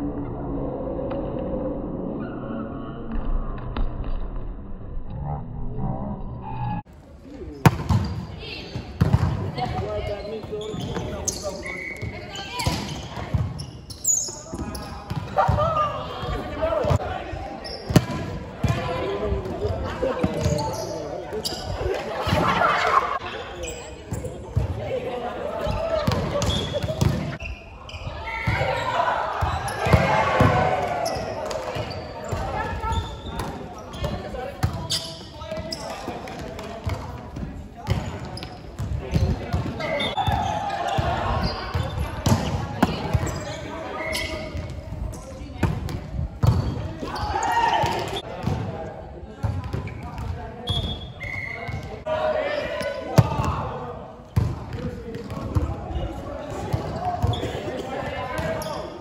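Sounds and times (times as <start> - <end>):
players calling out: 7.4 - 37.2.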